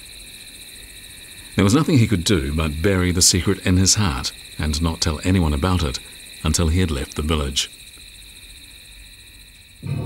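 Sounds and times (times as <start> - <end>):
insect chirring: 0.0 - 10.0.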